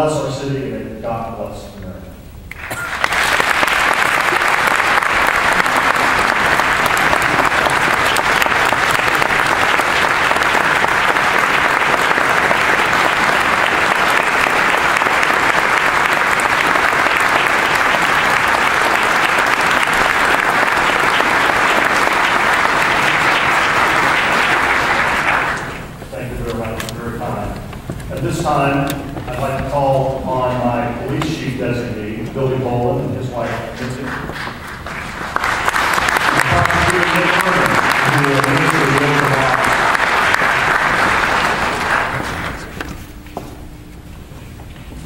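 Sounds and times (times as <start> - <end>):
audience applause: 2.5 - 26.0, 33.4 - 42.8.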